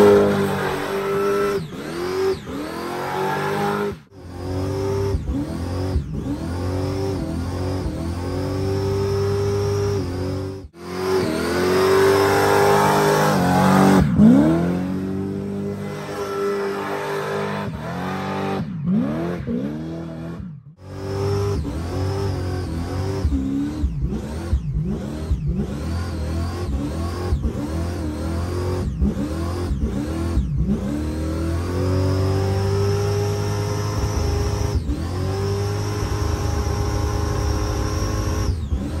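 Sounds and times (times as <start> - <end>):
car engine revving: 0.0 - 39.0.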